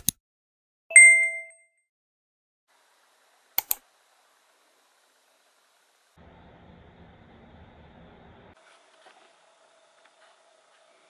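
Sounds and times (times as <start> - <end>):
bright ringing ding: 0.9 - 1.8
keyboard keystrokes: 3.6 - 3.8.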